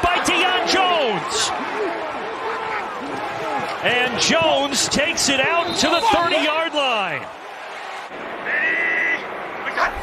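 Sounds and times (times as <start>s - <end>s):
announcer speaking: 0.0s - 1.6s, 3.8s - 7.2s.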